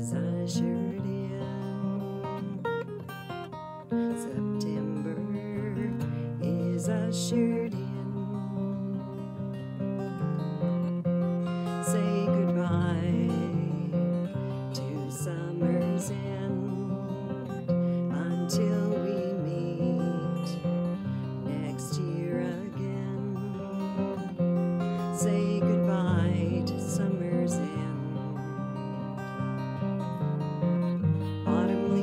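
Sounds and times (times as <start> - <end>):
acoustic guitar chords: 0.0 - 32.0.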